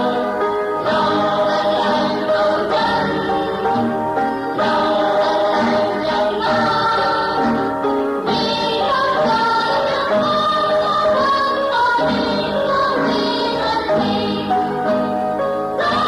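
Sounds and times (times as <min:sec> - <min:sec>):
choir singing: 0:00.0 - 0:16.0
instrumental backing: 0:00.0 - 0:16.0.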